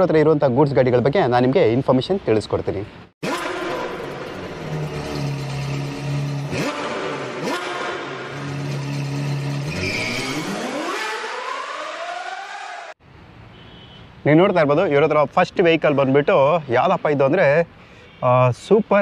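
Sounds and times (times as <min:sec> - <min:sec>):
sports car engine revving: 0:03.2 - 0:12.1.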